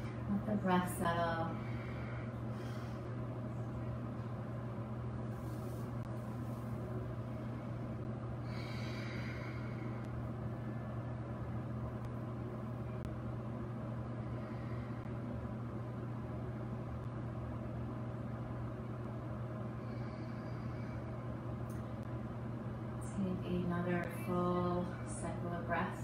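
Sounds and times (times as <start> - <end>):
low room hum: 0.0 - 26.0.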